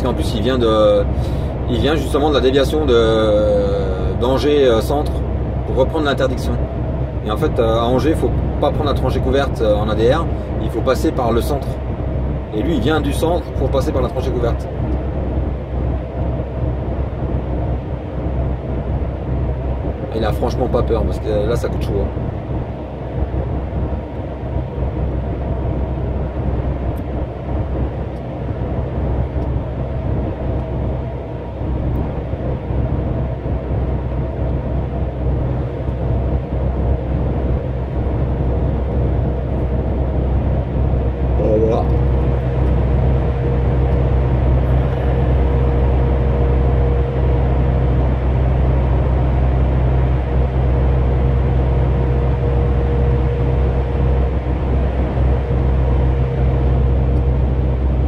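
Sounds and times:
diesel engine drone and road noise: 0:00.0 - 0:58.0
steady higher hum: 0:00.0 - 0:58.0.

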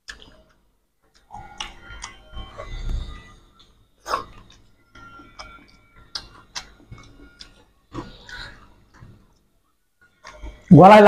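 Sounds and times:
mouths chewing: 0:04.0 - 0:09.4.

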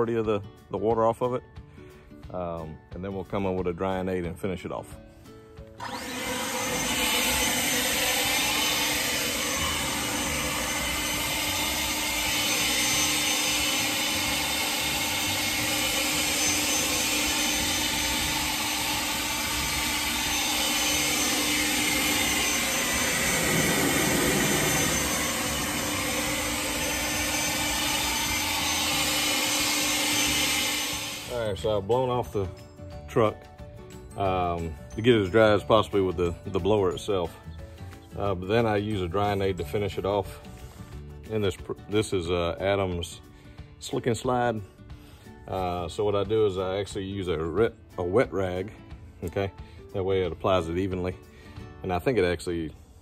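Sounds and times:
handheld blower rushing air: 0:05.8 - 0:32.1.

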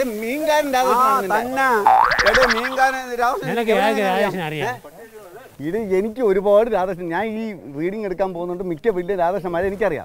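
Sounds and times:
men talking: 0:00.0 - 0:10.0
comic rising boing effect: 0:01.9 - 0:02.9.

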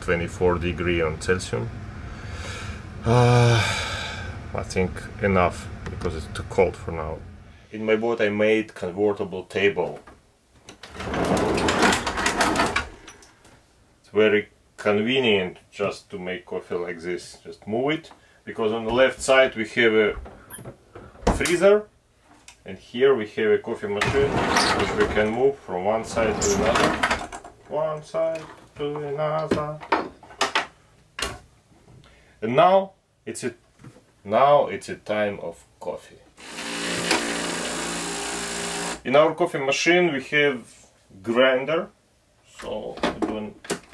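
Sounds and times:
wooden table scraping: 0:10.8 - 0:13.1, 0:24.0 - 0:27.2.

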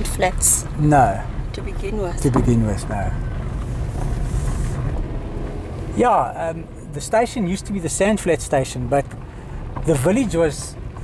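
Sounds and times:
car driving on dirt road: 0:00.0 - 0:11.0.

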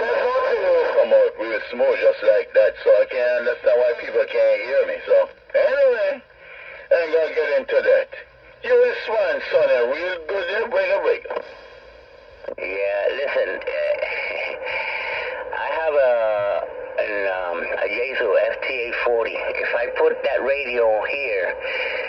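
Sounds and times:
radio operators talking over radio: 0:00.0 - 0:22.0.

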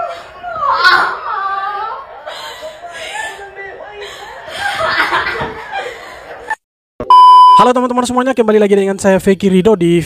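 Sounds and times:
short high beep: 0:07.0 - 0:07.6.

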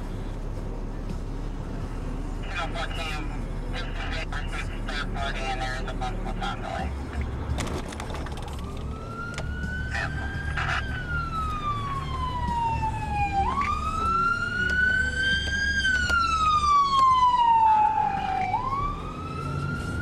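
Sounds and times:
road and car noise: 0:00.0 - 0:20.0
emergency siren wailing: 0:08.3 - 0:20.0.

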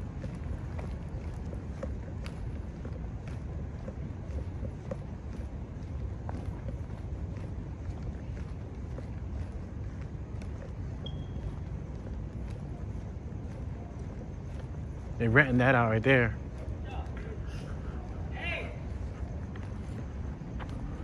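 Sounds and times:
footsteps on pavement: 0:00.0 - 0:21.0
low street rumble: 0:00.0 - 0:21.0
high chirp: 0:11.0 - 0:11.6.

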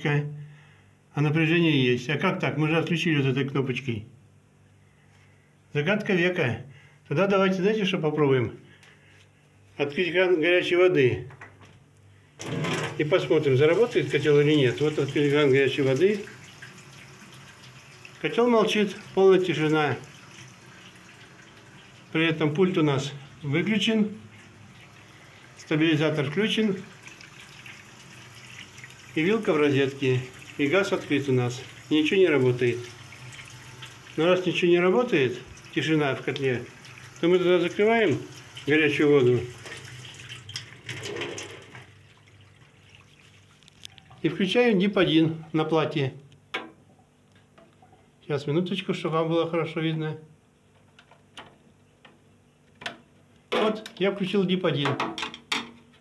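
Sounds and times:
water running from tap: 0:12.7 - 0:44.4.

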